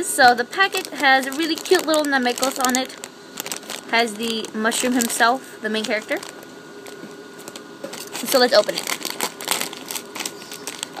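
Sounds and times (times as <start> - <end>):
plastic snack packet crinkling: 0.3 - 11.0.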